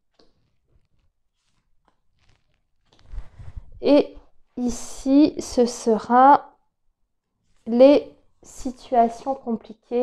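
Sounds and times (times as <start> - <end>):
cards rustling: 0.1 - 3.4.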